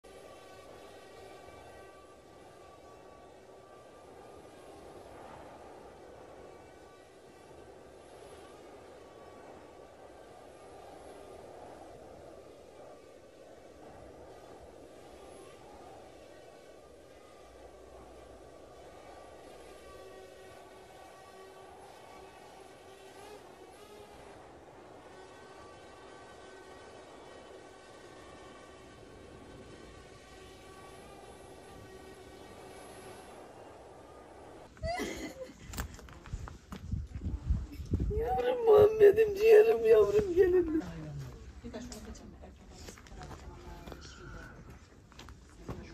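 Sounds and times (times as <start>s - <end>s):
faint steady hum: 0.0s - 45.9s.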